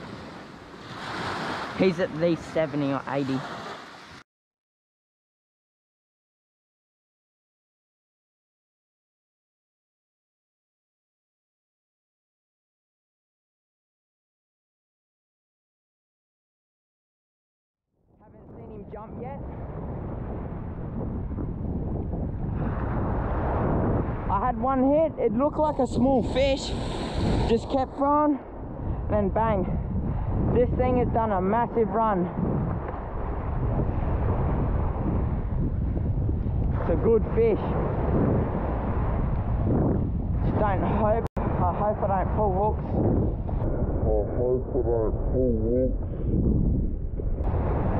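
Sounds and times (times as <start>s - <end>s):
small waves breaking on beach: 0.0s - 4.2s, 25.7s - 27.9s
wind buffeting microphone: 18.2s - 47.9s.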